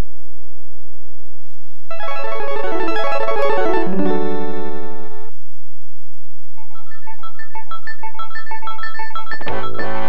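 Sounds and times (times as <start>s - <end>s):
keyboard music: 1.9s - 5.4s.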